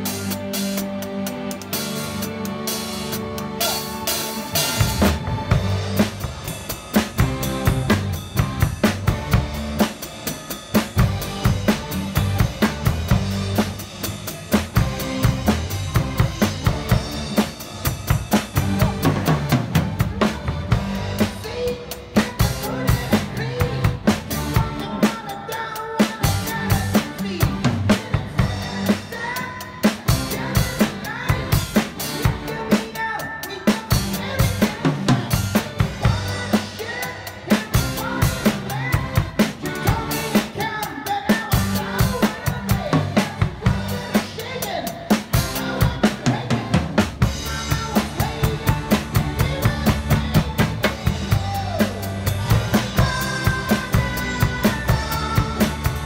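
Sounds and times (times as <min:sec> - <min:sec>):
backing song: 0:00.0 - 0:56.0
drum kit playing fast groove: 0:00.0 - 0:56.0.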